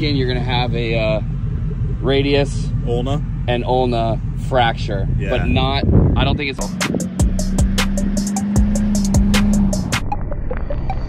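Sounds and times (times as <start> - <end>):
deep pitch-dropping beats: 0.0 - 11.0
background music with a beat: 6.6 - 11.0.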